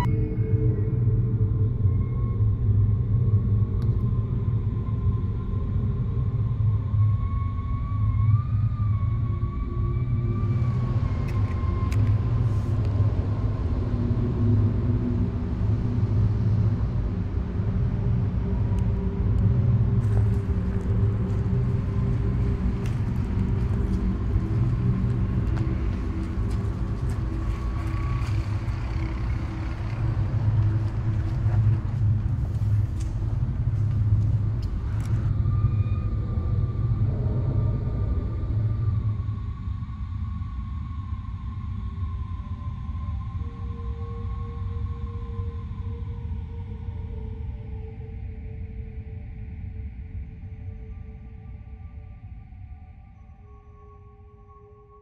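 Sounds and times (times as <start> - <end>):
faint wavering high tone: 0.0 - 1.0
steady low rumble: 10.1 - 48.2.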